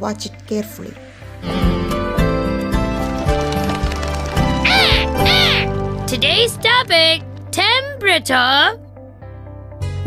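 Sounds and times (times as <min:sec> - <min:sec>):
cartoon music with steady beat: 0:04.4 - 0:08.5
high cartoon animal cry: 0:04.7 - 0:05.8.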